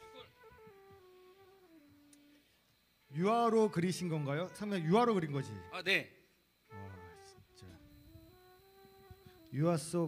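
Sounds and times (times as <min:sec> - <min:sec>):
soprano saxophone melody: 0:00.0 - 0:03.2, 0:06.7 - 0:09.6.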